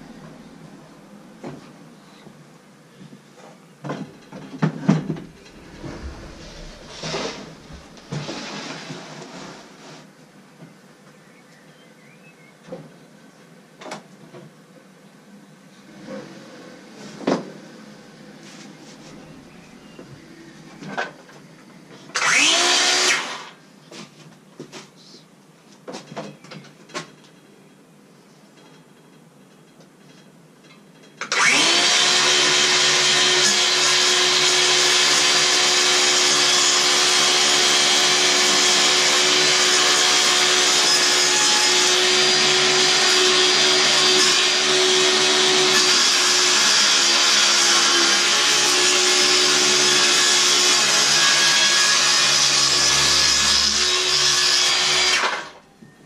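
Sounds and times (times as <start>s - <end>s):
power saw cutting board: 4.6s - 9.7s, 22.1s - 23.6s, 31.2s - 55.6s.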